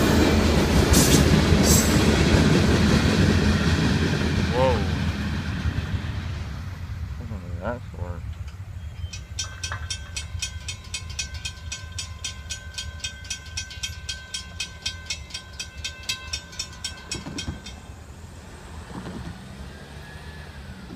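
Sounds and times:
low rumble of train: 0.0s - 20.9s
railroad crossing bell ringing: 8.4s - 18.4s
car driving across: 18.3s - 20.9s.

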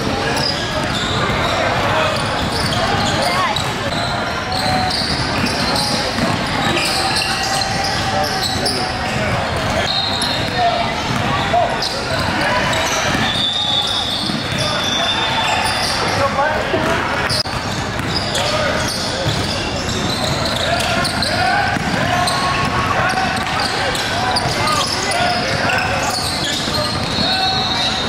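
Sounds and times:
shouts and chatter: 0.0s - 28.0s.

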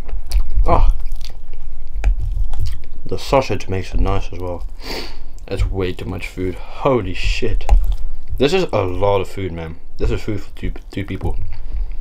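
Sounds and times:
close-up chewing: 0.0s - 3.1s, 7.6s - 8.4s.

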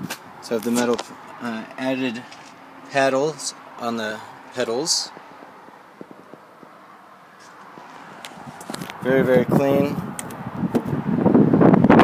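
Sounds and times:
phone handling clicks and rustles: 0.6s - 2.6s, 7.4s - 9.0s.

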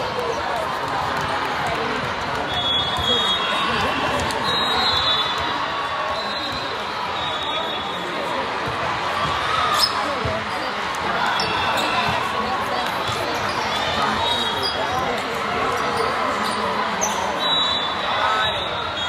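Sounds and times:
players' voices echoing: 0.0s - 19.0s
sneakers squeaking on floor: 9.2s - 12.3s, 13.0s - 15.2s, 15.8s - 17.9s.

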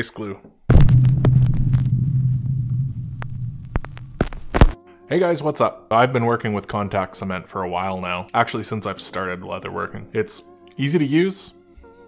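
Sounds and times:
deep rumbling drone: 0.7s - 4.8s.

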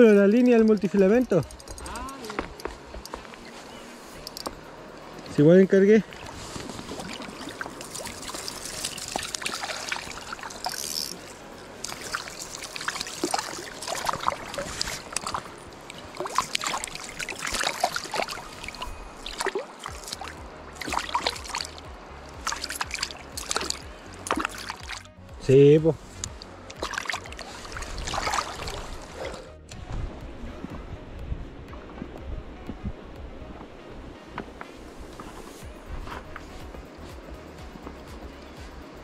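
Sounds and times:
river water trickling: 0.0s - 39.0s
light water splashes: 4.2s - 25.2s, 26.2s - 29.7s.

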